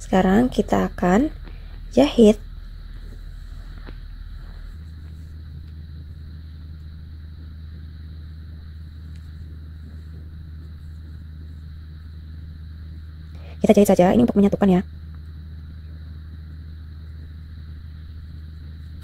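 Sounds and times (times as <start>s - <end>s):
faint high-pitched whine: 0.0s - 19.0s
low background hum: 0.0s - 19.0s.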